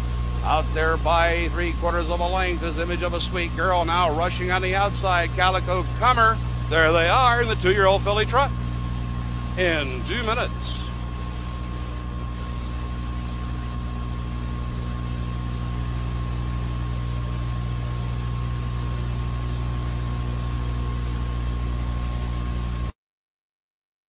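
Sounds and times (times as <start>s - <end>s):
electrical hum and hiss: 0.0s - 22.9s.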